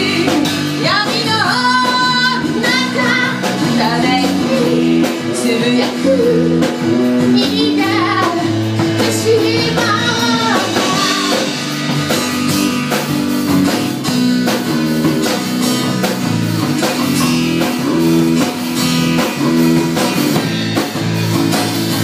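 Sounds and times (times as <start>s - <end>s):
drum kit rock beat: 0.0s - 22.0s
electric bass: 0.0s - 22.0s.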